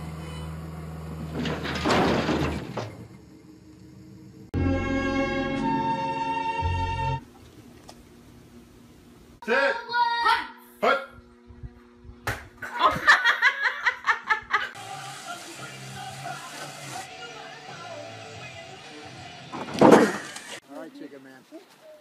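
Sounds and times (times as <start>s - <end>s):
background music: 4.6s - 7.2s, 14.8s - 19.6s
people laughing: 12.7s - 14.8s.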